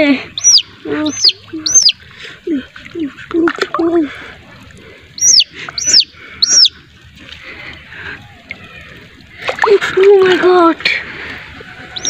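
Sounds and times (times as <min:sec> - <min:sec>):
loud high bird chirps: 0:00.4 - 0:02.0, 0:05.2 - 0:06.7.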